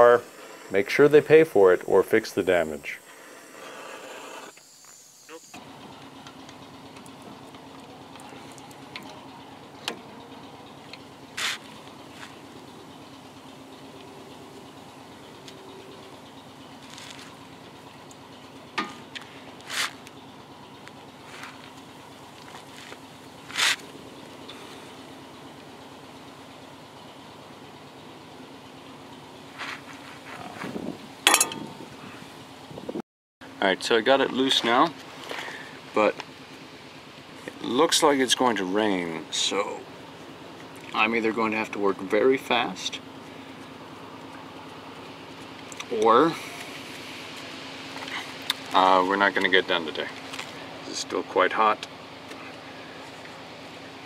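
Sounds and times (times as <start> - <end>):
steady low hum: 0.0 - 54.0
metallic tool clicks and clanks: 31.3 - 31.6.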